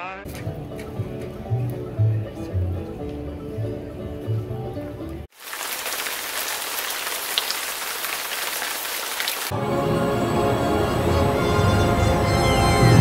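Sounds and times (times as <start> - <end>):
background music: 0.2 - 5.3, 9.5 - 13.0
steady rain pouring: 5.3 - 9.5.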